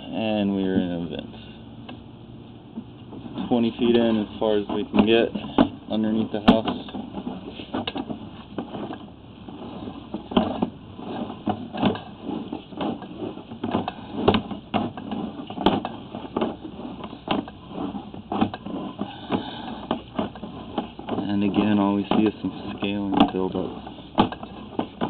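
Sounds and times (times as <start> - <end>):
cable clicking and knocking: 2.8 - 25.0.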